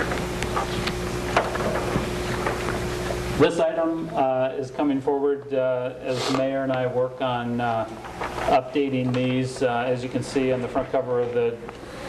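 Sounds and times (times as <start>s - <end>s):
sound system hiss and hum: 0.0s - 12.0s.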